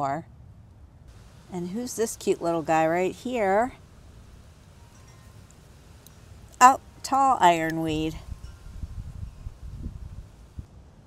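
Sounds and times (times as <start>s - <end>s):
faint high chime-like tones: 4.8s - 5.5s.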